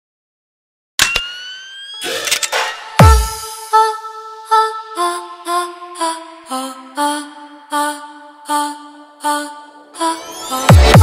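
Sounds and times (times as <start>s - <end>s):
sharp electronic hits: 1.0s - 3.8s
rising siren-like tone: 1.0s - 3.9s.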